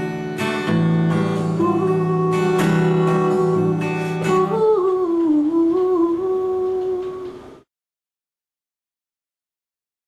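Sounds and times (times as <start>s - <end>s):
woman humming: 1.6s - 7.6s.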